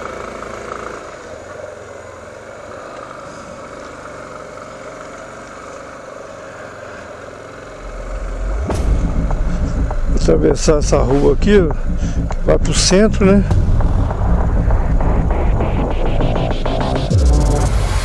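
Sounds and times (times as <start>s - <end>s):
motorcycle engine humming: 1.1s - 18.0s
deep low rumble: 7.8s - 18.0s.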